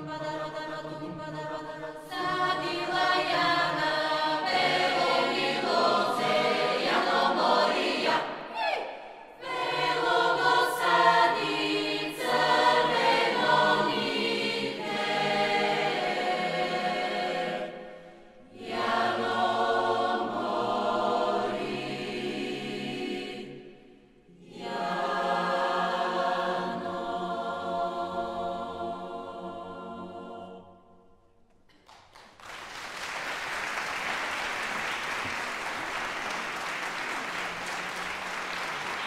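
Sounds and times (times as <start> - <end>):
mixed choir singing: 0.0 - 31.1.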